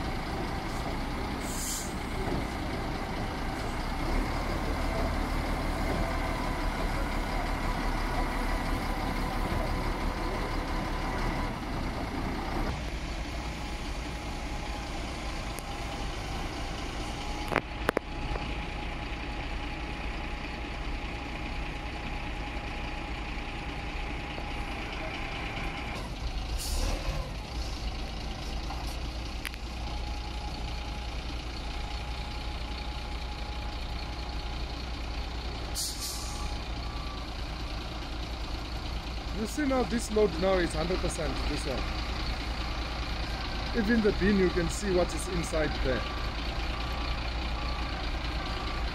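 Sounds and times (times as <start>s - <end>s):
diesel engine running: 0.0s - 48.9s
short air hisses: 1.4s - 2.0s, 35.8s - 36.5s.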